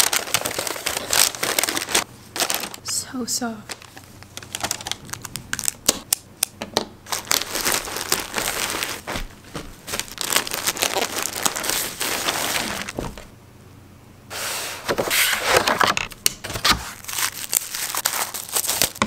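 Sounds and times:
packaging crinkling and rustling: 0.0s - 2.9s, 3.6s - 6.0s, 7.0s - 13.3s, 14.9s - 19.0s.

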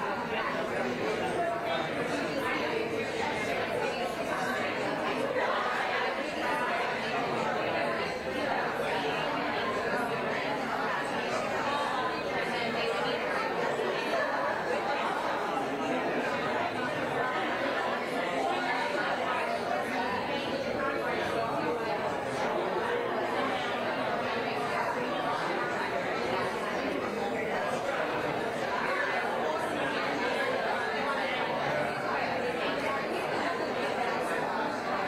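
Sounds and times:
babble of many voices: 0.0s - 35.0s.

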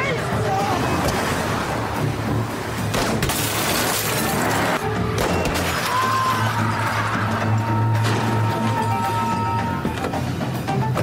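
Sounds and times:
glass shattering: 3.0s - 4.6s.

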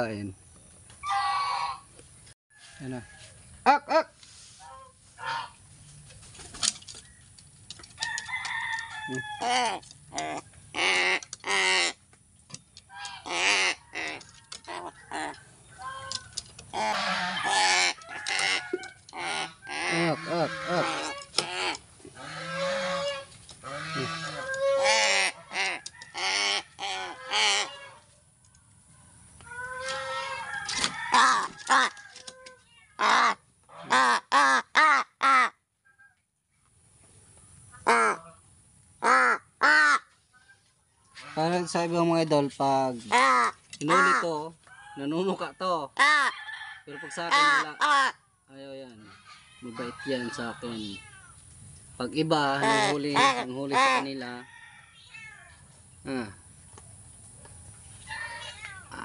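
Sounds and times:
crows cawing: 9.0s - 12.0s, 12.9s - 28.0s, 29.5s - 35.6s, 39.0s - 40.1s, 43.1s - 45.2s, 46.0s - 48.2s.

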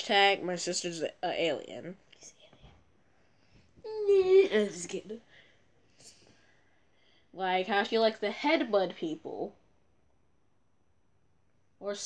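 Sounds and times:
person speaking: 3.8s - 5.3s.

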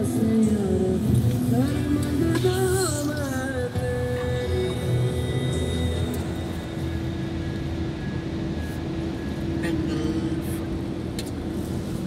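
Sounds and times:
car road and engine rumble: 0.0s - 12.0s
steady hum: 0.0s - 12.0s.

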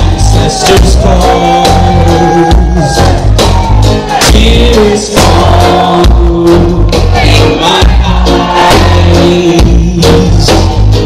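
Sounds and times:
heavy bass line: 0.0s - 11.0s
live reggae band playing: 0.0s - 11.0s.

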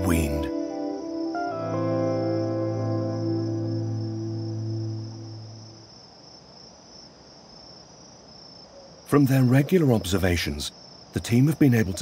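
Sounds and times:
low music chord: 0.0s - 5.8s
crickets chirring: 0.0s - 12.0s.

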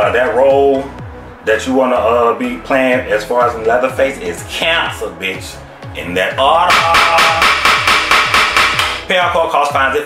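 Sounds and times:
music with deep sliding bass: 0.0s - 10.0s
wooden gavel banging: 6.7s - 9.0s.

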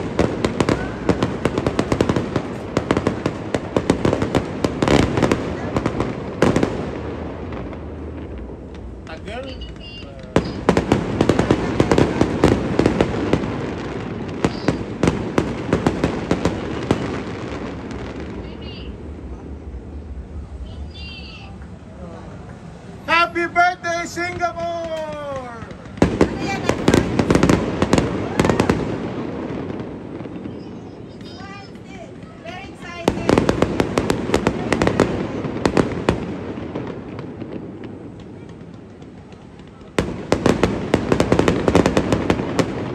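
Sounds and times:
fireworks cracking and popping: 0.0s - 19.6s, 22.5s - 42.9s.

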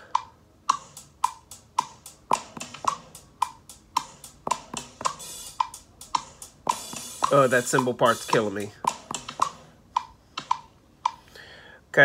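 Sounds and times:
metronome clicking: 0.0s - 11.3s
electronic drum-kit hits: 0.7s - 9.8s.

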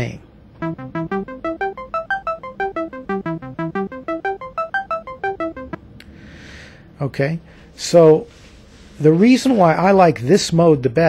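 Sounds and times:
synth arpeggio short notes: 0.6s - 5.8s.

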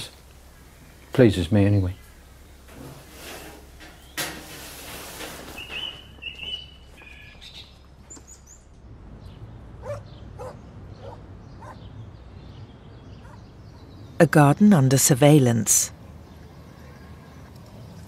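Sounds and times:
low outdoor rumble: 7.6s - 14.4s.

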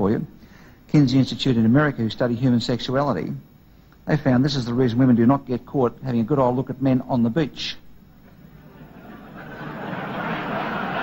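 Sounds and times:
large audience laughing: 8.5s - 11.0s.

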